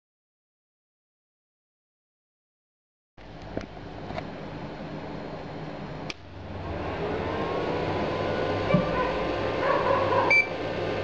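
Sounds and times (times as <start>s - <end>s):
machine hum: 3.2s - 11.0s.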